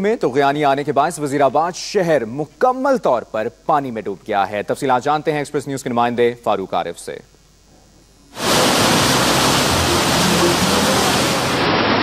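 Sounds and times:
floodwater rushing roar: 8.4s - 12.0s.

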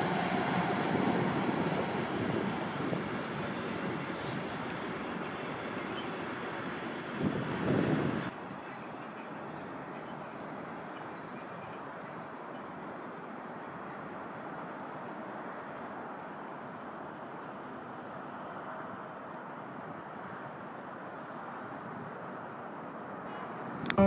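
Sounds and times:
distant freight wagons rolling: 0.0s - 14.3s
freight train rumbling: 0.0s - 24.0s.

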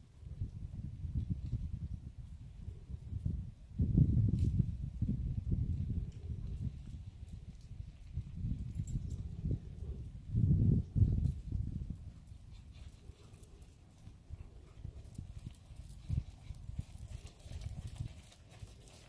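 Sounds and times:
pony hoofbeats cantering on sand: 4.0s - 19.0s.

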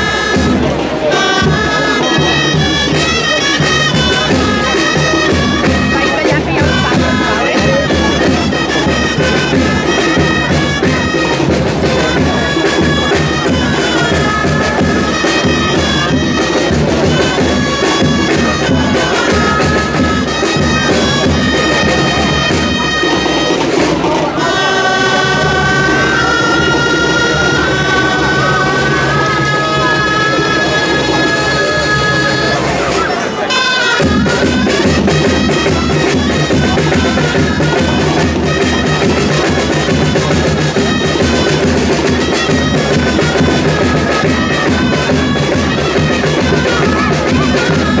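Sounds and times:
reedy wind instrument melody: 0.0s - 48.0s
low drum beat: 0.3s - 32.9s.

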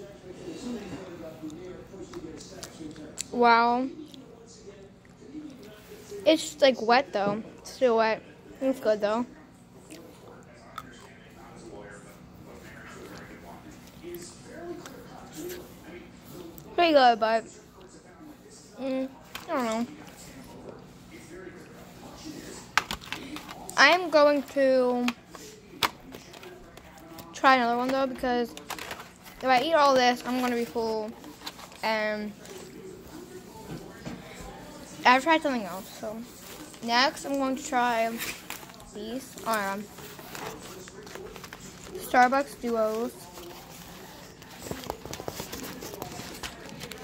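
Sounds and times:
plastic packaging crinkling: 25.8s - 31.8s, 38.0s - 47.0s.

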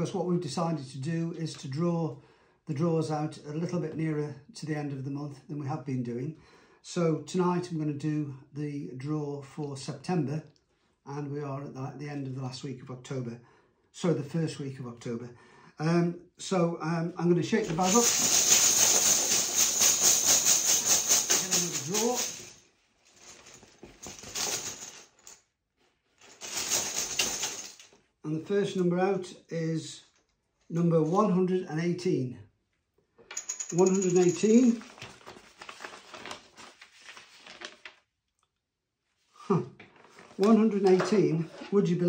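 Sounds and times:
paper sheets rustling: 17.6s - 22.5s, 33.9s - 38.0s, 39.8s - 41.9s
plastic tokens rattling in bag: 17.6s - 22.6s, 23.2s - 25.4s, 26.2s - 27.9s, 33.3s - 35.0s.

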